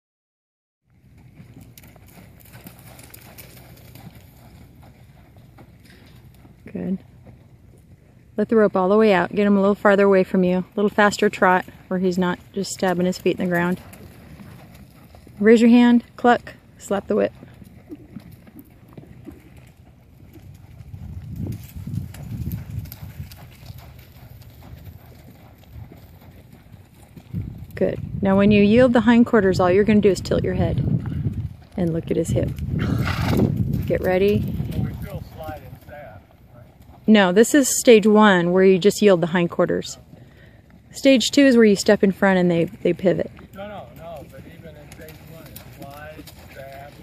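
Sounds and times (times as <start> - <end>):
horse hooves on loose dirt: 0.9 - 47.0.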